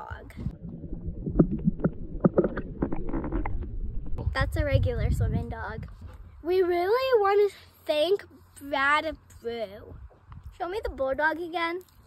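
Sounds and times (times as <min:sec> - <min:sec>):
underwater rumble of moving water: 0:00.0 - 0:05.4.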